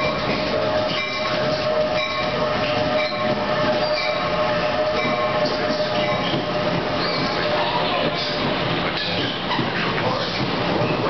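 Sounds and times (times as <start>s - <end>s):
steady whine: 0.0s - 10.9s
passing train rumble: 0.0s - 11.0s.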